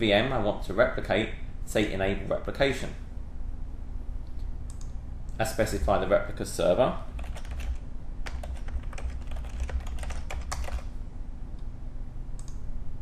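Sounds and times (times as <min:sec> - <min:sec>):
typing on computer keyboard: 0:07.2 - 0:10.9.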